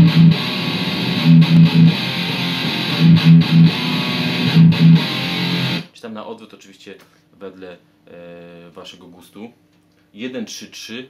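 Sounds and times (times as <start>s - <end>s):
distorted electric guitar riff: 0.0s - 5.9s.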